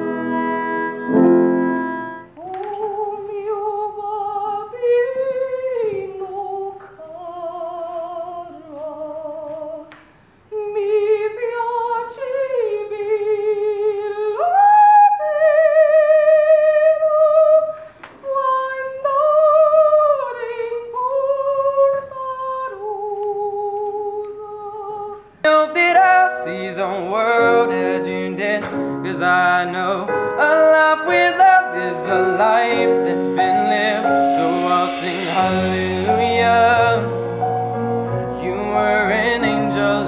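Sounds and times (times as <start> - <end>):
woman singing with vibrato: 0.0 - 9.9, 10.5 - 37.5.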